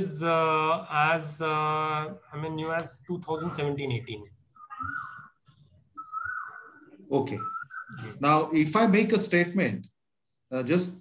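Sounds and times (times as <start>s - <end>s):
man speaking: 0.0s - 4.4s
thin high whistling tone: 4.6s - 8.2s.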